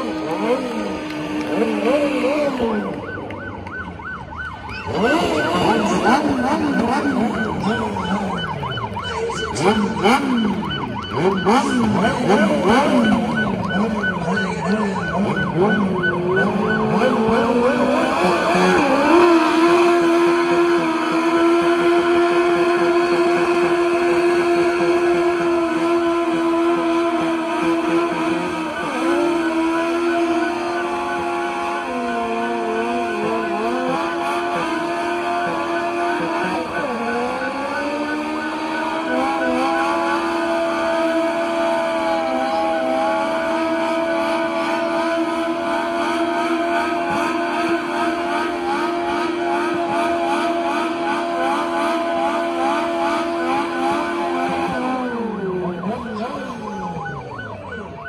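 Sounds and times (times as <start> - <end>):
car engine revving: 0.0 - 58.0.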